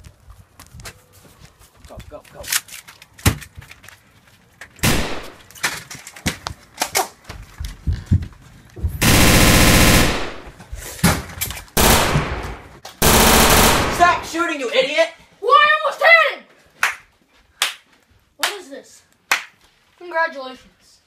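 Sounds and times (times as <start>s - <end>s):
rapid gunfire bursts: 4.8s - 5.4s, 9.0s - 10.5s, 11.8s - 14.4s.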